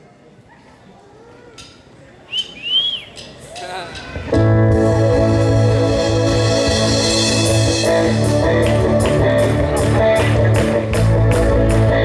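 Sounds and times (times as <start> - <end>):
low background murmur: 0.0 - 4.5
person whistling: 2.3 - 3.3.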